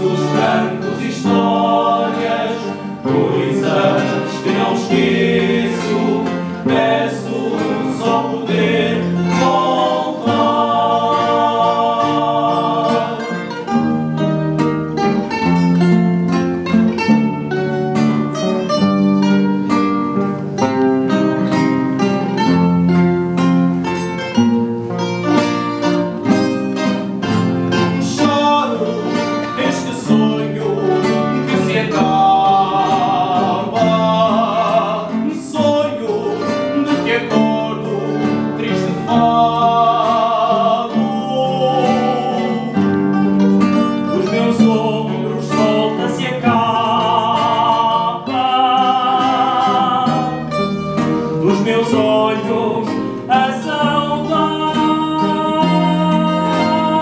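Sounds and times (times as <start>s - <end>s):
man singing with vibrato: 0.0s - 16.0s, 26.2s - 57.0s
classical guitars strumming: 0.0s - 57.0s
plucked guitar melody: 0.0s - 57.0s.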